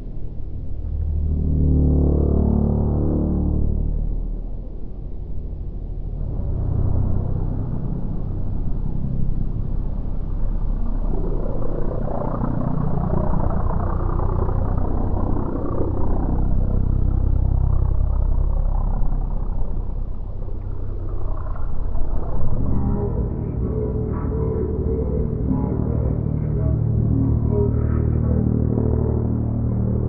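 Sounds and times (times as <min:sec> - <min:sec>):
propeller plane engine drone: 0:00.0 - 0:30.0.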